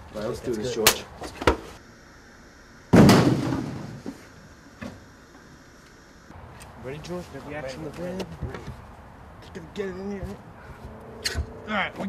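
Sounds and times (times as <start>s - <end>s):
door slamming shut: 2.9s - 4.0s.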